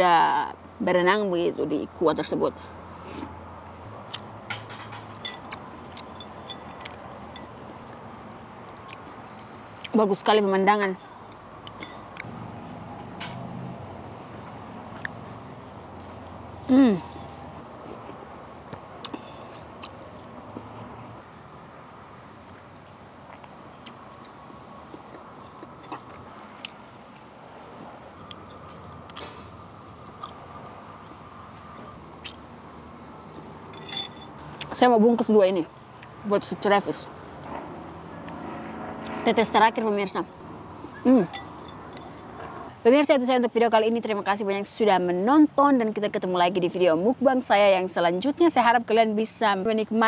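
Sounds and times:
low background noise: 0:00.0 - 0:50.0
steady background noise: 0:00.0 - 0:50.0
person chewing: 0:05.4 - 0:06.1, 0:08.7 - 0:09.9, 0:17.8 - 0:18.3, 0:19.0 - 0:21.0, 0:23.3 - 0:26.8, 0:28.2 - 0:32.4
light ringing clicks and ticks: 0:33.7 - 0:34.4.

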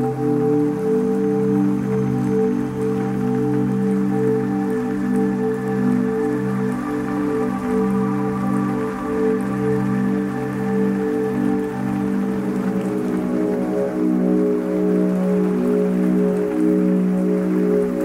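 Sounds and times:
ambient electronic music: 0:00.0 - 0:18.0.

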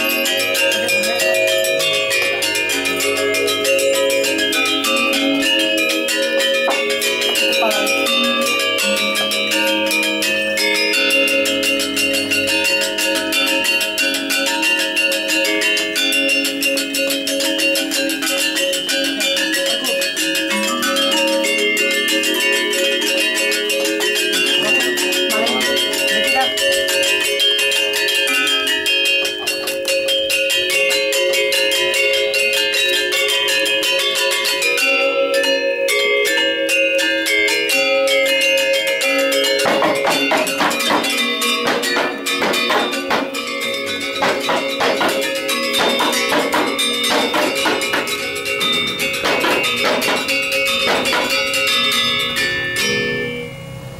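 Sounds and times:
gamelan metallophones: 0:00.0 - 0:53.9.

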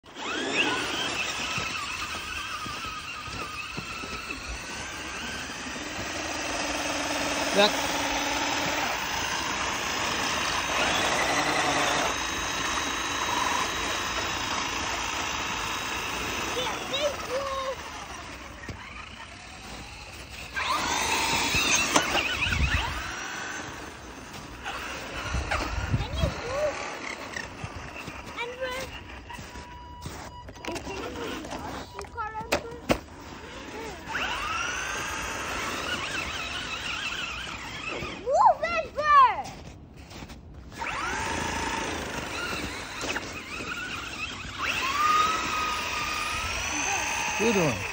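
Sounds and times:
electric toy truck motors whining: 0:00.0 - 0:38.8, 0:39.6 - 0:47.9.

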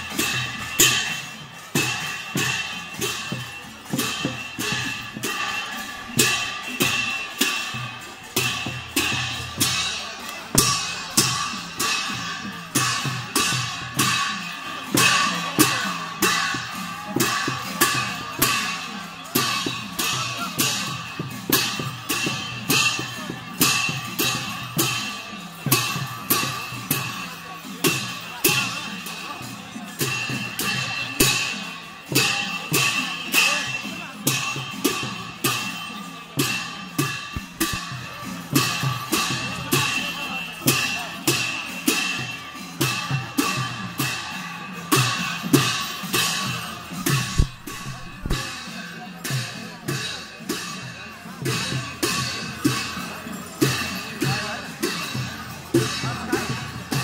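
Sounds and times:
cymbals clashing: 0:00.0 - 0:57.0
drums: 0:00.0 - 0:57.0.

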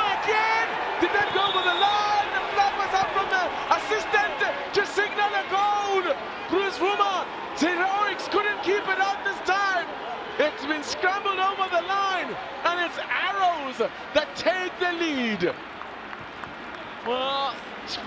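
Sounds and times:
players shouting: 0:00.0 - 0:15.5.

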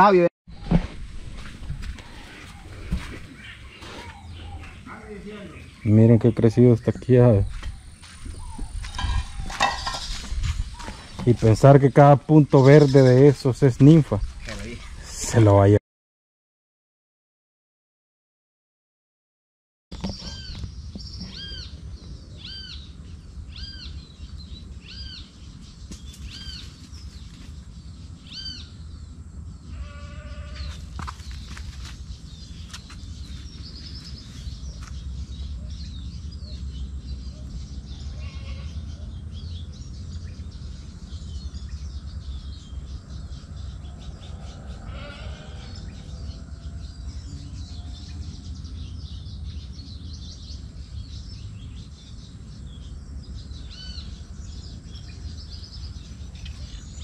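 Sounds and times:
bleating animal calls: 0:29.6 - 0:30.8, 0:38.0 - 0:38.9, 0:44.3 - 0:46.8.

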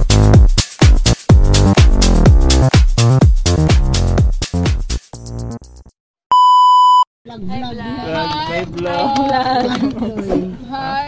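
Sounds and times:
electronic beep tone: 0:06.3 - 0:07.1.

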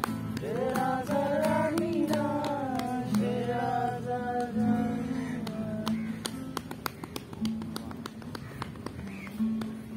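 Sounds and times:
sharp percussive taps: 0:00.0 - 0:03.6, 0:05.4 - 0:09.9
acoustic guitar playing: 0:00.0 - 0:08.3, 0:08.9 - 0:09.9.

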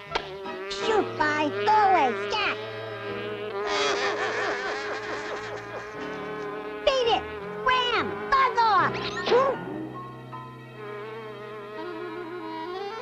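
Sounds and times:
cartoon fly buzzing: 0:00.0 - 0:13.0.

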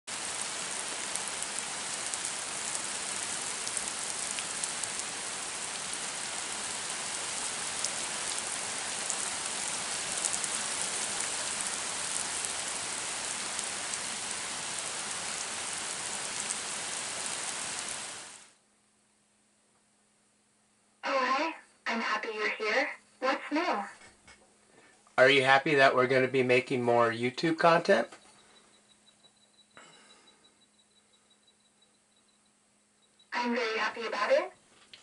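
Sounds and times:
raindrops ticking close by: 0:00.1 - 0:18.5
steady rain falling: 0:00.1 - 0:18.6.

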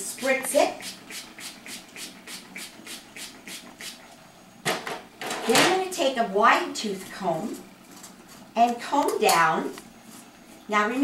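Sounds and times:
spray bottle spritzing: 0:00.8 - 0:04.0.

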